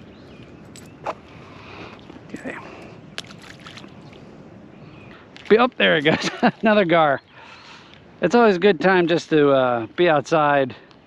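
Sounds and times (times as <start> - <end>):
wind and water hiss: 0.0 - 11.0.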